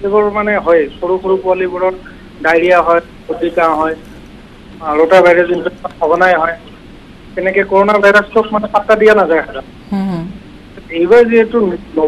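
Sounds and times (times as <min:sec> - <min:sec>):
person talking over telephone: 0:00.1 - 0:04.0, 0:04.8 - 0:06.7.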